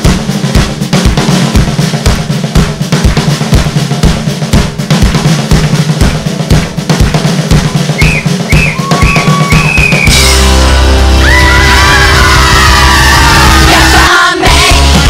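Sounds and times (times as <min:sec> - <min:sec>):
drum kit playing a steady beat: 0:00.0 - 0:15.0
whistle blasts: 0:07.9 - 0:10.4.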